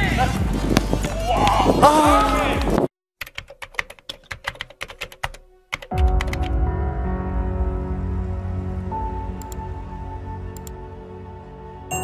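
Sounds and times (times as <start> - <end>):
keyboard typing clicks: 3.2 - 6.5
music with deep bass: 5.9 - 12.0.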